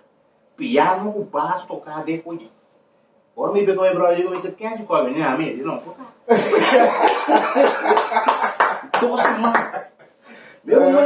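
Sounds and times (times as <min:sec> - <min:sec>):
men laughing hard: 0:06.3 - 0:09.8
hand claps: 0:07.0 - 0:09.9.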